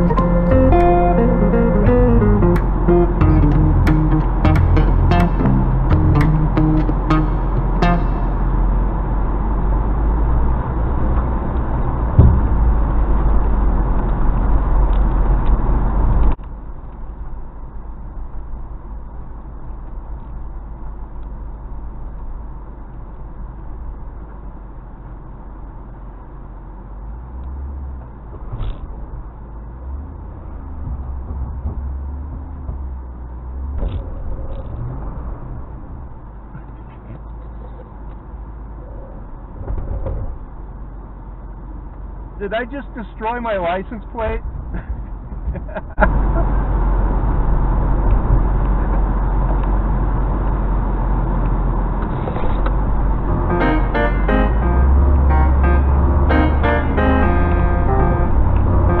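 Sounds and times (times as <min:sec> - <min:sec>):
background music: 0:00.0 - 0:08.8, 0:53.2 - 0:59.0
off-road vehicle engine rumble: 0:00.0 - 0:59.0
vehicle knocks: 0:12.2 - 0:12.9, 0:30.6 - 0:34.0.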